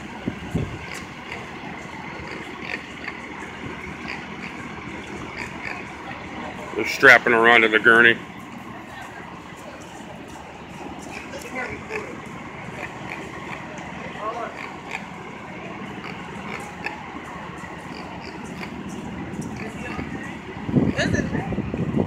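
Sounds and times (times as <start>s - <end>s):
distant people talking: 0.0s - 22.0s
traffic hum: 0.0s - 22.0s.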